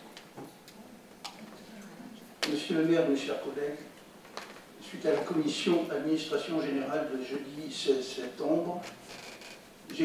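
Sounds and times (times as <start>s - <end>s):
faint murmur of voices: 0.7s - 2.7s.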